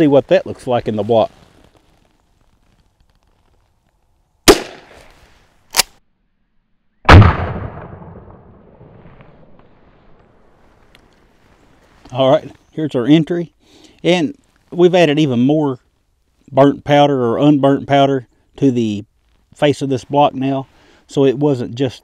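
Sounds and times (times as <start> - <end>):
rifle shots cracking: 4.5 - 5.1, 7.1 - 9.0.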